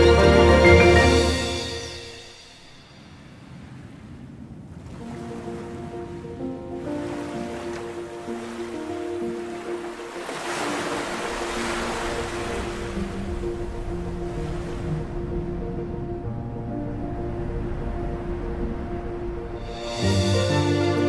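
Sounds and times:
soft music with held notes: 0:00.0 - 0:02.4, 0:05.0 - 0:21.0
waves washing onto beach: 0:02.6 - 0:16.0.

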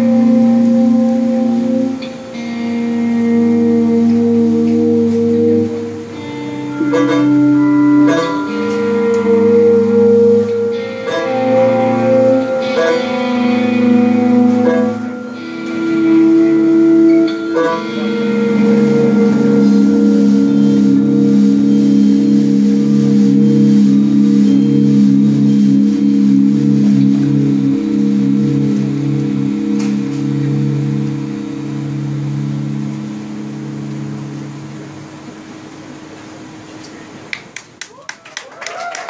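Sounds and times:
low pulsing note: 0:00.0 - 0:37.2
electric guitar drone: 0:00.0 - 0:37.4.

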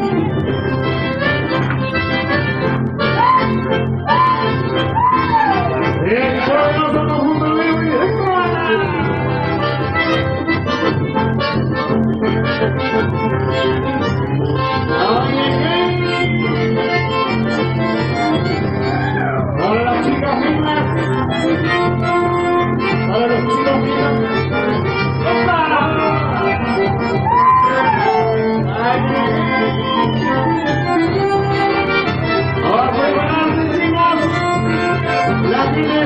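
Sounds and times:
accordion and bandoneon melody: 0:00.0 - 0:36.0
electric bass line: 0:00.0 - 0:36.0.

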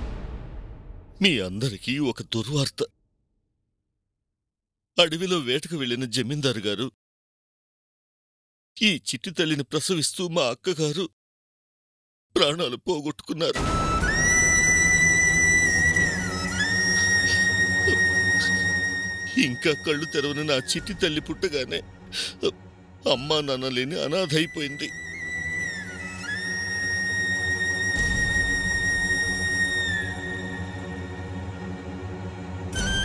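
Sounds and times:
high whistle-like tone: 0:13.6 - 0:20.9, 0:24.2 - 0:31.2, 0:32.8 - 0:33.0.

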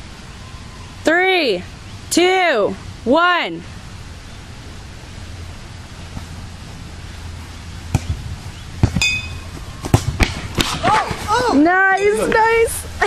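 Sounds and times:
outdoor background noise: 0:00.0 - 0:13.0
bats striking ball: 0:07.9 - 0:08.2, 0:08.8 - 0:11.2.

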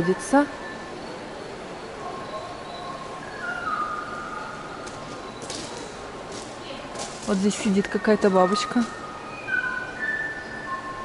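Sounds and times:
steady background hiss: 0:00.0 - 0:11.0
bird whistled call: 0:02.2 - 0:04.8, 0:07.8 - 0:11.0.

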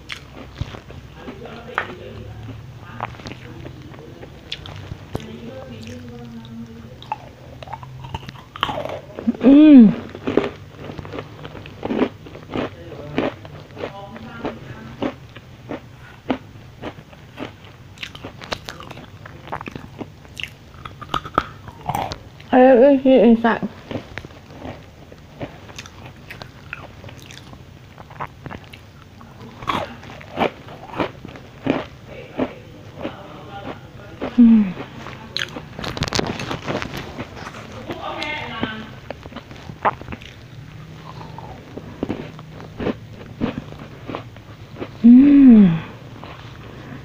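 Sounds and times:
cookies being crunched: 0:07.0 - 0:22.5, 0:23.8 - 0:32.0, 0:34.2 - 0:38.3.

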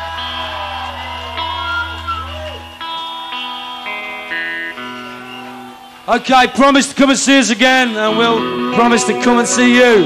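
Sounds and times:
rock band playing quietly: 0:00.0 - 0:10.0
sustained guitar chords: 0:00.0 - 0:10.0.

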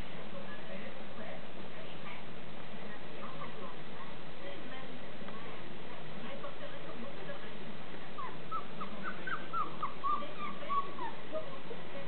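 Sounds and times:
puppies yipping: 0:08.2 - 0:11.2.

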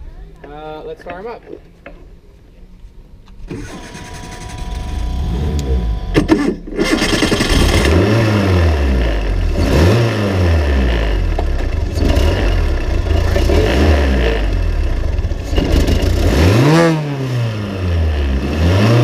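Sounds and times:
race car engine starting and idling: 0:03.2 - 0:19.0
engine throttle blips: 0:03.3 - 0:19.0.

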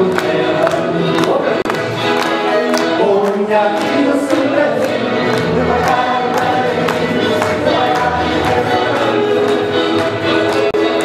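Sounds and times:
accordion music: 0:00.0 - 0:11.0
group singing: 0:00.0 - 0:11.0
people clapping in time: 0:00.0 - 0:11.0.

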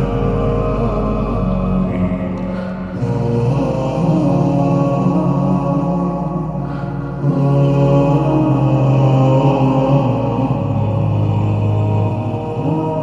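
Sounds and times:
male voices singing with reverb: 0:00.0 - 0:13.0.

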